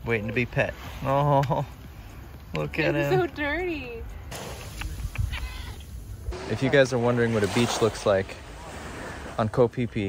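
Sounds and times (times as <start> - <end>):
cat meowing faintly: 5.3 - 5.9.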